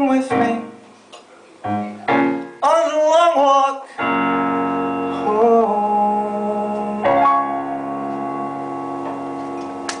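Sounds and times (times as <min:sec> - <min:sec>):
piano chord held: 0:04.0 - 0:10.0.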